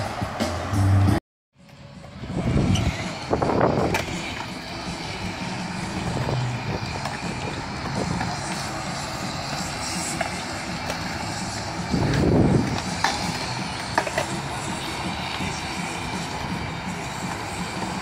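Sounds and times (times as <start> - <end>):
skateboard wheels rolling on concrete: 0.0 - 18.0
skatepark din: 0.0 - 18.0.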